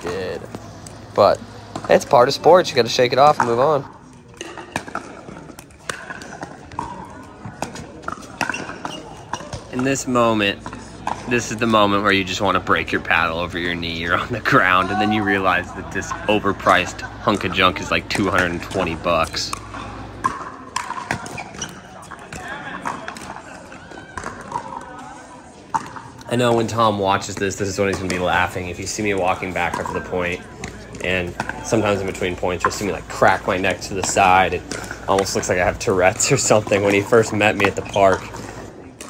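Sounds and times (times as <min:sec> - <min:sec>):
faint voices: 0:00.0 - 0:39.0
paddles hitting plastic ball: 0:03.2 - 0:12.0, 0:15.6 - 0:25.1, 0:25.7 - 0:39.0.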